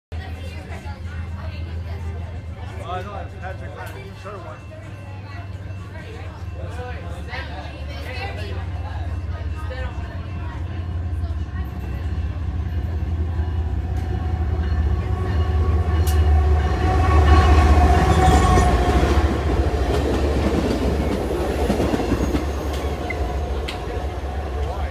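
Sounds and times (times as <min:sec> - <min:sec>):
diesel train passing: 0:00.1 - 0:24.9.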